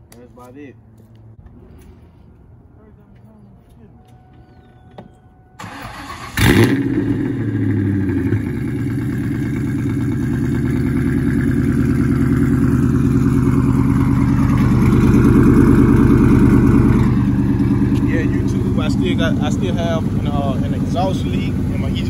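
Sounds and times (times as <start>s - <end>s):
car engine idling: 3.9s - 22.0s.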